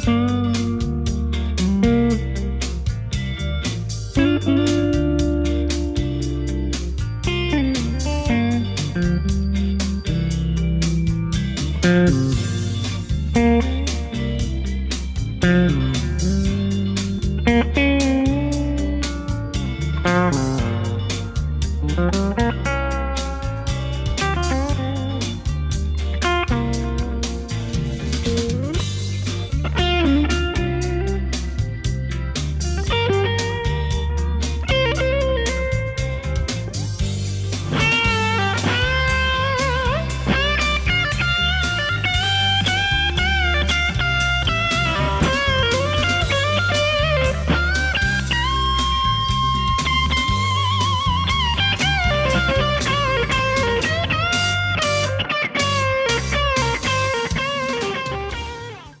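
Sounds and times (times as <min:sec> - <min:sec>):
bass and drums: 0:00.0 - 0:59.0
overdriven electric guitar lead: 0:00.0 - 0:59.0.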